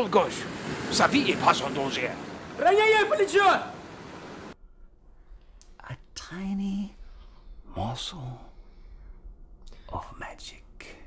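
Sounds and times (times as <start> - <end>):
person whispering: 9.7 - 11.0.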